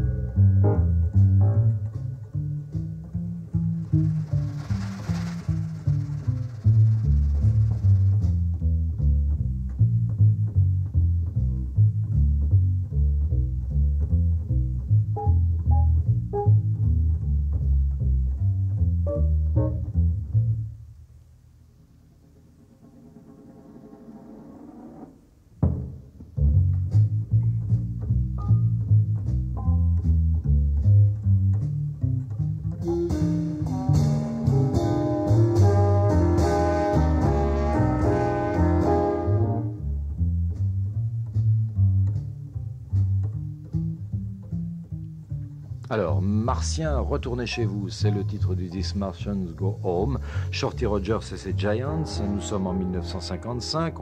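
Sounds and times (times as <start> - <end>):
pizzicato double bass: 0.0 - 23.2, 25.4 - 54.0
drums: 0.0 - 54.0
faint rising sound: 3.6 - 8.2.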